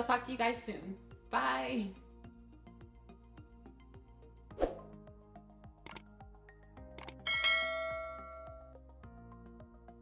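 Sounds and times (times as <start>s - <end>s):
bright bell chime: 7.3s - 8.7s.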